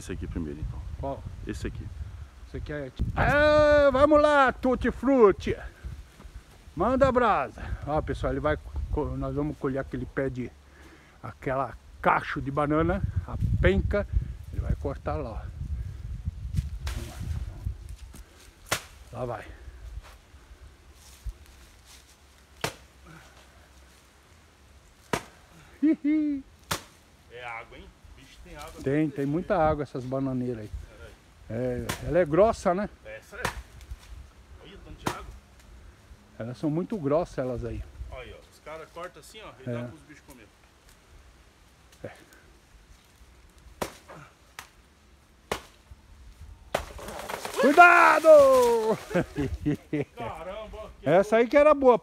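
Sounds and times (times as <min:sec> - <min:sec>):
machete chopping plant trunk: 0:18.6 - 0:19.0, 0:22.6 - 0:22.9, 0:25.0 - 0:25.4, 0:26.6 - 0:27.0, 0:31.8 - 0:32.2, 0:33.4 - 0:33.8, 0:35.0 - 0:35.3, 0:43.8 - 0:44.7, 0:45.4 - 0:45.8, 0:46.7 - 0:48.8.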